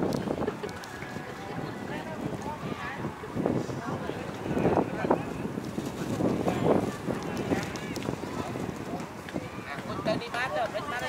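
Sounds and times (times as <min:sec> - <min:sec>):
people talking in background: 0:00.0 - 0:11.0
wind buffeting microphone: 0:00.0 - 0:11.0.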